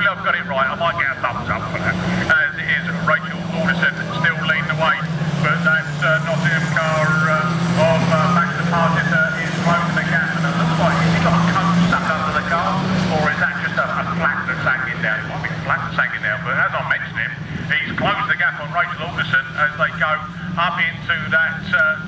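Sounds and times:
race car engines revving: 0.0 - 22.0.

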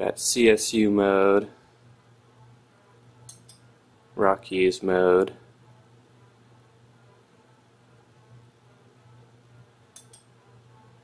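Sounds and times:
low steady hum: 0.0 - 11.0
faint click: 9.9 - 10.3.

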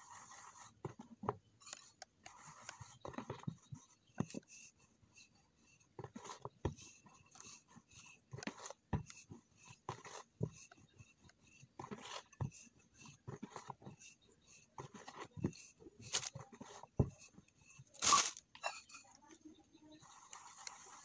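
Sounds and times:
rustling handling noises: 14.6 - 19.4.

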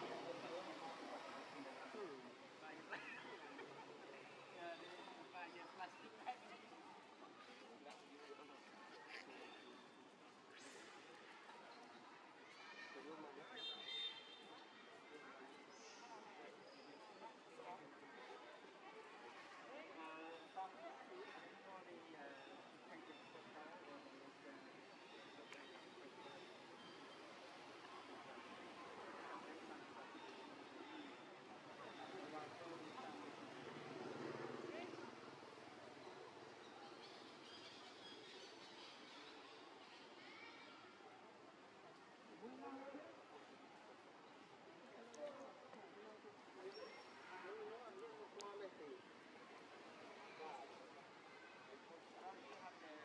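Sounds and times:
faint voices: 0.0 - 53.0.

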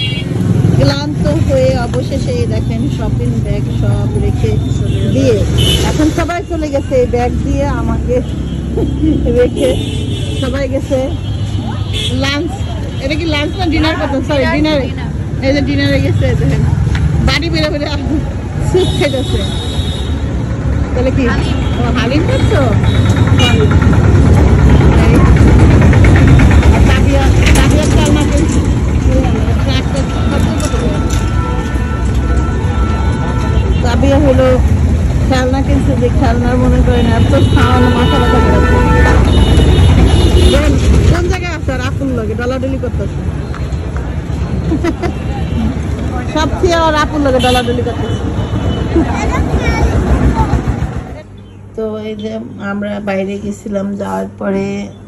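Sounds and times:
low rumble of street traffic: 0.0 - 55.0
people talking: 0.8 - 19.5, 21.0 - 23.9, 24.7 - 31.2, 33.8 - 39.3, 40.4 - 43.1, 44.7 - 48.2, 49.0 - 55.0.

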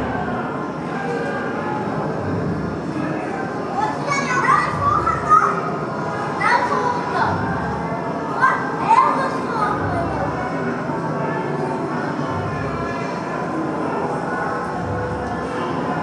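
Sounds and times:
children calling out: 3.8 - 5.7.

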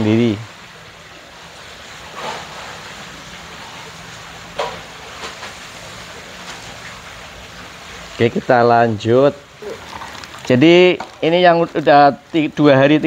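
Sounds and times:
background hiss: 0.0 - 13.0
plastic bags crinkling: 9.6 - 13.0.

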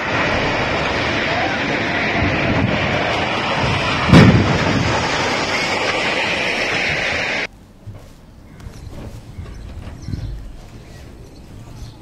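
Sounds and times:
heavy crash: 0.0 - 7.5
rumble of collapsing bridge: 0.0 - 7.5.

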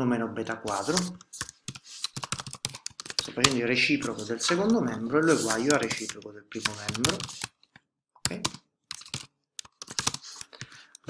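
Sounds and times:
computer keyboard typing: 0.7 - 3.6, 4.5 - 11.0.

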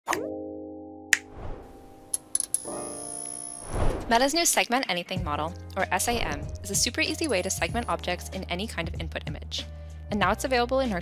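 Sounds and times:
pop sliding upward in pitch: 1.1 - 2.2.

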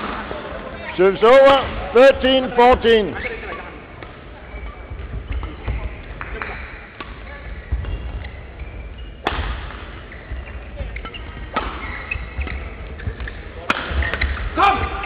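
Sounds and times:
shuttlecock hits echoing: 9.2 - 10.0, 10.9 - 15.0.

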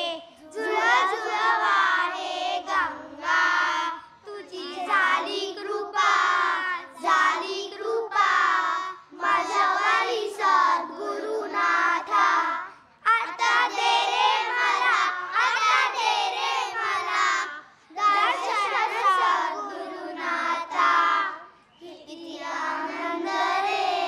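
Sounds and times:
children singing in unison: 0.0 - 24.0.

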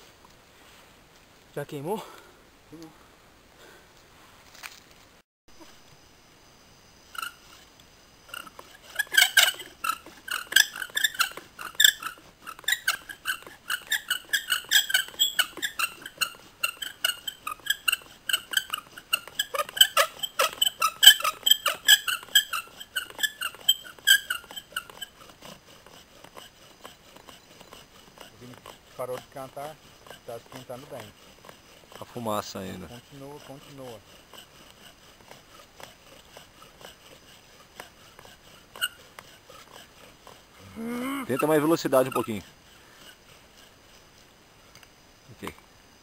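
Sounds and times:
wooden spindle squeaking: 7.1 - 44.4.

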